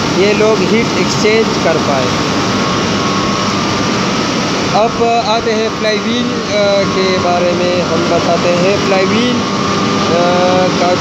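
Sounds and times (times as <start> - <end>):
turbine generator running: 0.0 - 11.0
man talking: 0.1 - 2.2, 4.7 - 9.5, 10.1 - 11.0.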